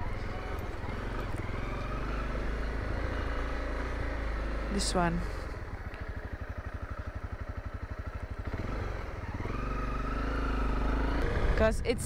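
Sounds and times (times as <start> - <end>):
motorcycle engine idling and revving: 0.0 - 12.0.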